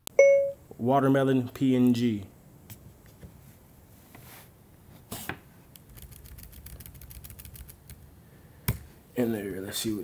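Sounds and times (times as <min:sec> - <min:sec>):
computer keyboard typing: 0:05.8 - 0:08.0.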